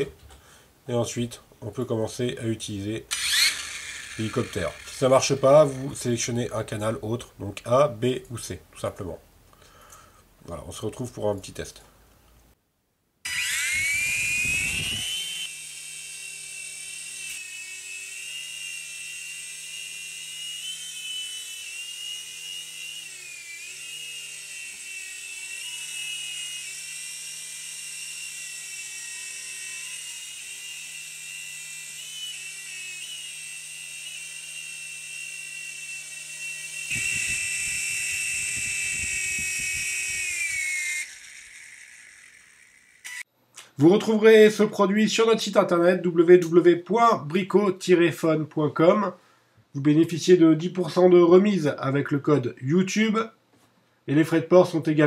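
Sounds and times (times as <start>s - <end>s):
toy helicopter motor whine: 3.1s - 6.0s, 13.2s - 43.3s.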